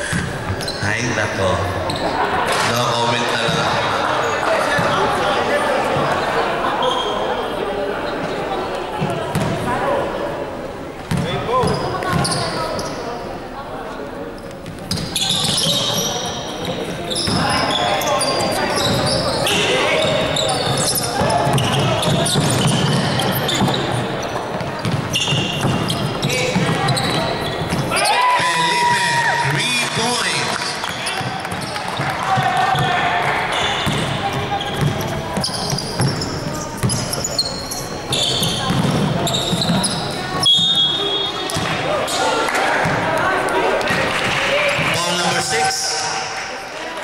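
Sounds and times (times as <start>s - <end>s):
sneakers squeaking on floor: 0.0s - 5.2s, 5.9s - 9.8s, 11.0s - 13.4s, 14.4s - 28.1s, 28.7s - 43.1s
chatter of voices: 0.0s - 47.0s
ball bouncing on hardwood court: 9.0s - 9.6s, 11.1s - 12.5s, 20.0s - 27.9s, 33.7s - 37.1s, 38.3s - 40.0s.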